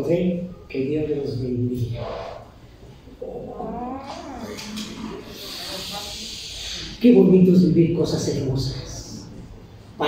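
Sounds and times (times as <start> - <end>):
hiss: 5.3 - 7.0.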